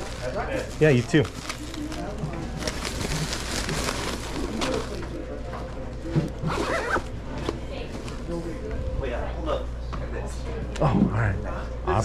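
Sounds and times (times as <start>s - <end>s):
zipper rasping: 6.5s - 7.1s.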